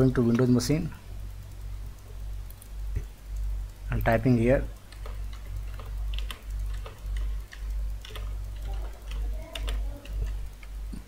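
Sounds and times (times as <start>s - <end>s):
low electrical hum: 0.0s - 11.0s
keyboard keystrokes: 4.7s - 10.8s.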